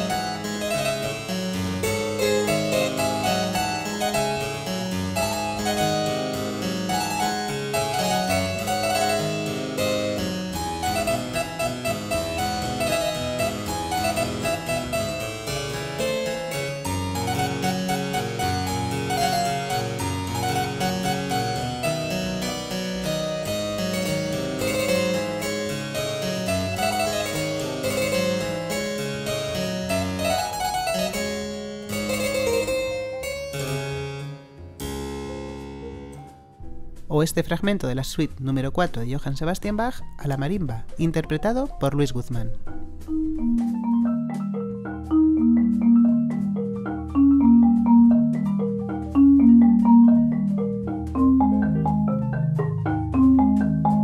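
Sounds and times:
solo harpsichord playing: 0:00.0 - 0:37.1, 0:41.2 - 0:54.0.

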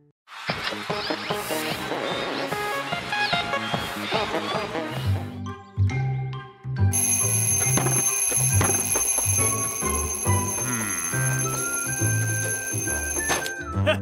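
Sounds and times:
upbeat cartoon music: 0:00.5 - 0:14.0
alarm clock ringing: 0:06.9 - 0:13.6.

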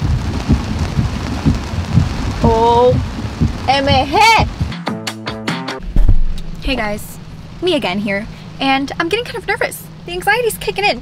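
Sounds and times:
heavy rain on a car: 0:00.0 - 0:04.7
low thuds: 0:00.0 - 0:04.8, 0:05.8 - 0:06.8.

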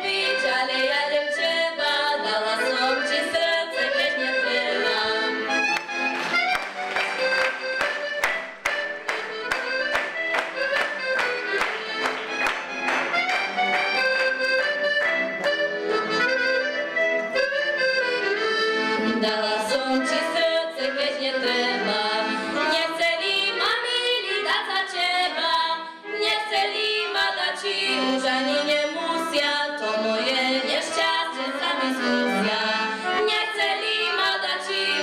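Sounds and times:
folk band with accordion: 0:00.0 - 0:35.0
rhythmic chords: 0:04.8 - 0:19.0.

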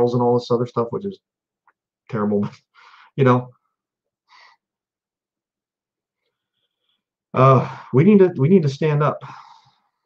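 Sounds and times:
man breathing: 0:02.7 - 0:03.2, 0:04.2 - 0:04.8, 0:09.2 - 0:10.0.

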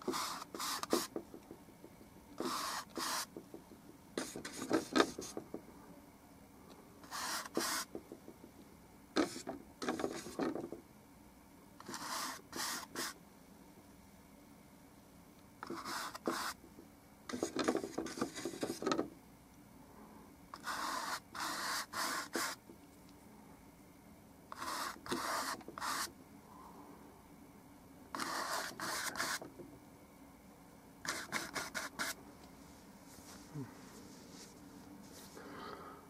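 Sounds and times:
paintbrush scrubbing on canvas: 0:02.4 - 0:03.3.

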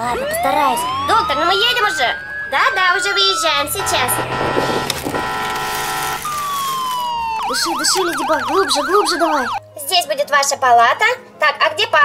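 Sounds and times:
ambulance siren horn tone: 0:00.0 - 0:09.6.

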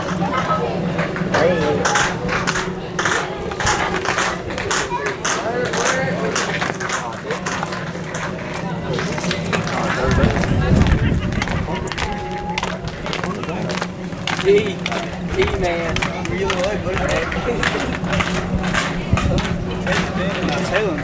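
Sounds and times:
indistinct chatter and calls: 0:00.0 - 0:21.0.

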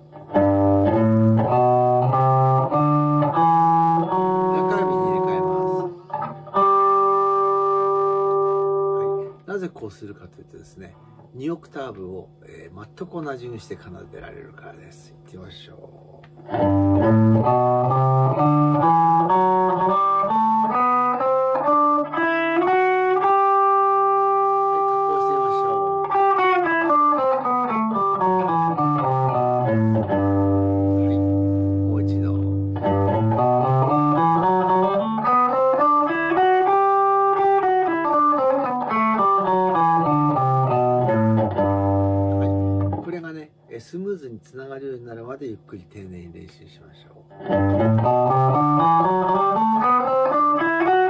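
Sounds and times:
electric guitar playing scale: 0:00.0 - 0:09.7, 0:15.5 - 0:43.4, 0:47.2 - 0:51.0.

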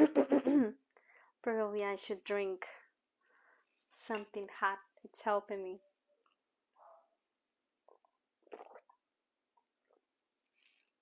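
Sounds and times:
faint gulps: 0:07.8 - 0:10.1
person sipping hot drink: 0:07.9 - 0:09.0.

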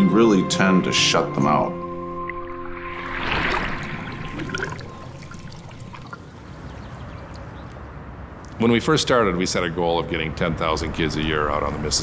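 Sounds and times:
water splashing with bubbles: 0:02.2 - 0:07.5.

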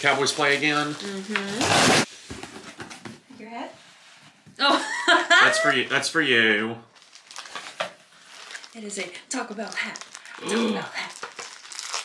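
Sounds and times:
packaging rustling and clicking: 0:07.0 - 0:08.8, 0:11.1 - 0:12.0.

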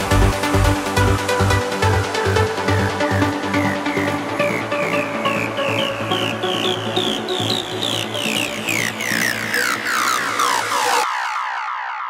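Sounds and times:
steady bass: 0:00.0 - 0:10.5
trance synth figure: 0:00.1 - 0:12.0.

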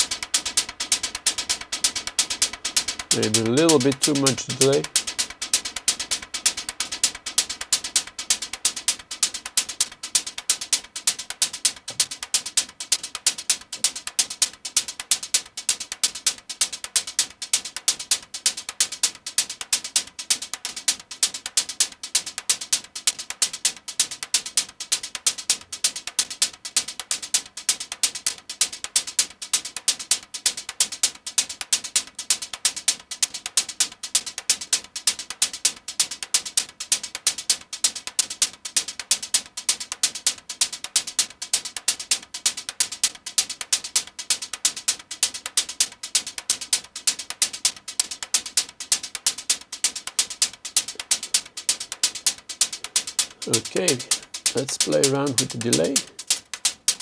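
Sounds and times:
synth hi-hat loop with delay: 0:00.0 - 0:57.0.

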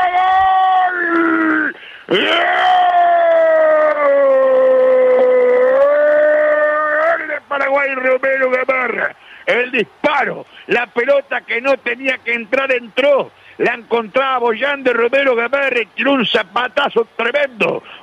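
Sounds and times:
man shouting goal cry: 0:00.0 - 0:09.0
man commentating excitedly: 0:06.6 - 0:18.0.

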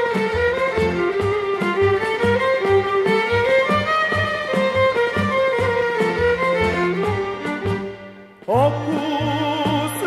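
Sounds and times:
violin melody: 0:00.0 - 0:10.0.

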